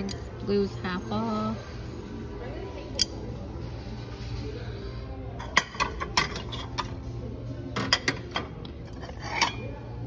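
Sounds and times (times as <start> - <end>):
china plate clinking: 7.8 - 9.8.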